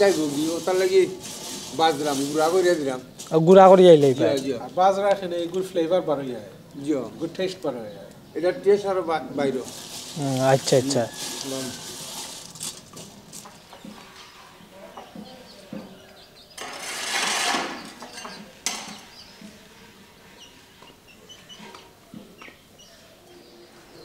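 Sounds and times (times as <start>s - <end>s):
seeds scraping on metal tray: 0.0s - 4.2s, 9.6s - 14.5s, 16.6s - 19.1s.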